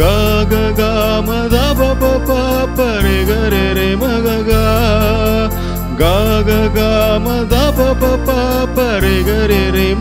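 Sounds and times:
bass line: 0:00.0 - 0:10.0
keyboard melody: 0:00.0 - 0:10.0.

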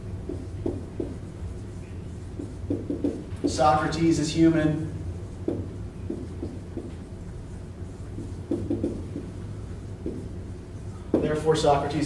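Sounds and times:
marker writing on whiteboard: 0:00.0 - 0:04.4, 0:05.3 - 0:12.0
low room hum: 0:00.0 - 0:12.0.

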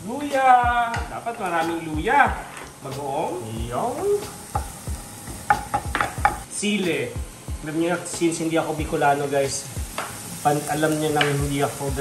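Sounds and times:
aromatics sizzling in oil: 0:00.0 - 0:12.0
spatula knocking against pan: 0:04.5 - 0:04.8, 0:05.4 - 0:06.4.

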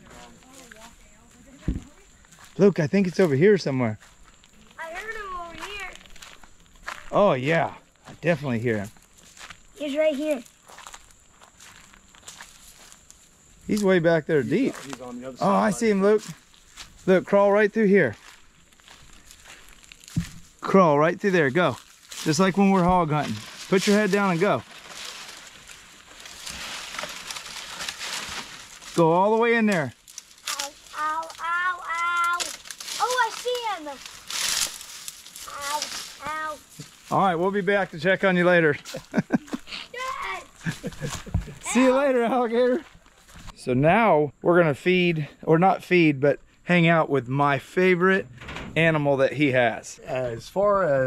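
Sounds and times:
dry leaves rustling and crackling: 0:18.2 - 0:43.4.

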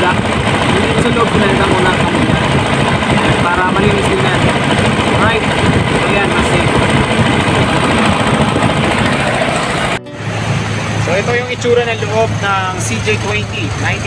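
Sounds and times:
engine running: 0:00.0 - 0:14.0
low hum: 0:00.0 - 0:14.0.

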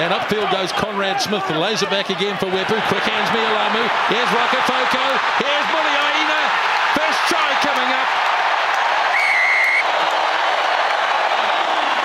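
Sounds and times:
crowd cheering and applauding: 0:00.0 - 0:12.0
shrill whistle: 0:09.1 - 0:09.9.

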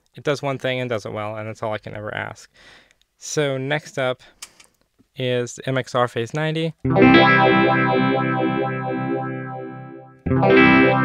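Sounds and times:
electric guitar chord with phaser: 0:06.9 - 0:11.0.

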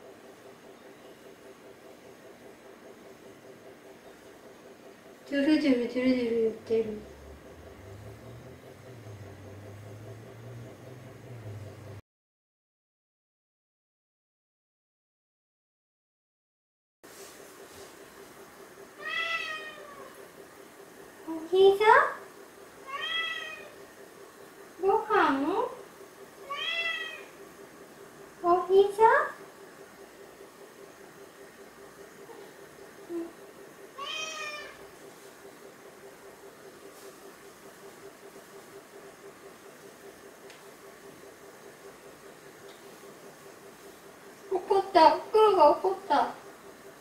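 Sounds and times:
faint background hum: 0:00.0 - 0:12.0, 0:17.1 - 0:47.0
cat meowing: 0:19.0 - 0:20.1, 0:22.8 - 0:23.8, 0:26.4 - 0:27.3, 0:34.0 - 0:34.8.

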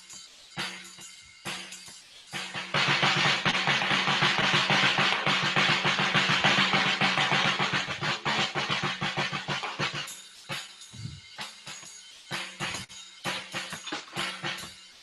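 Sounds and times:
cymbals washing: 0:00.0 - 0:15.0
drum kit playing fast: 0:02.4 - 0:14.7.

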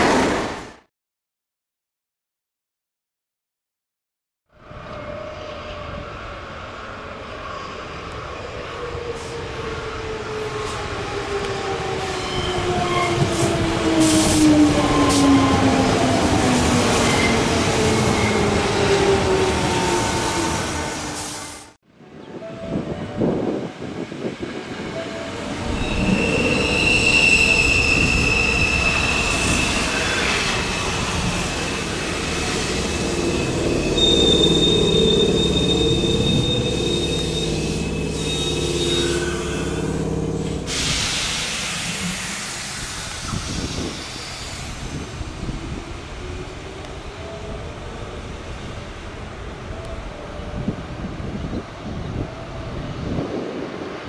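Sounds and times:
train wheels and brakes squealing: 0:07.4 - 0:15.7, 0:24.9 - 0:45.5.

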